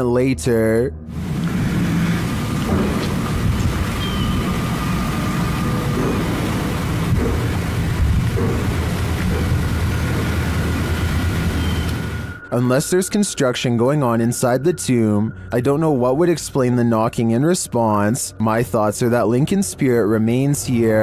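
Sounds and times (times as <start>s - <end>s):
low rumbling handling noise: 1.1s - 12.4s.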